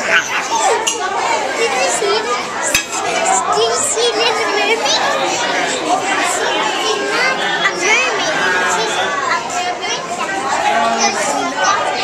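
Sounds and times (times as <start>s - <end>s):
crowd of people talking: 0.0s - 12.0s.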